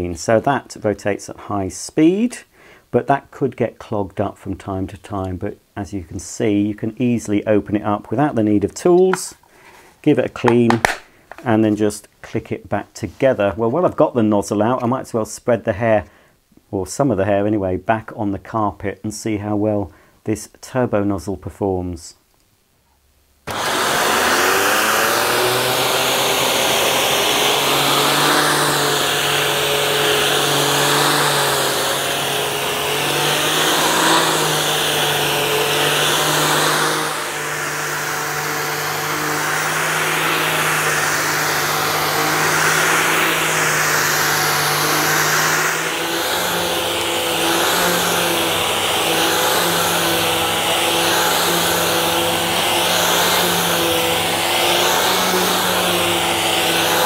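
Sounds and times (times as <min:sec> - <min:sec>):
vacuum cleaner motor whine: 0:23.5 - 0:57.0.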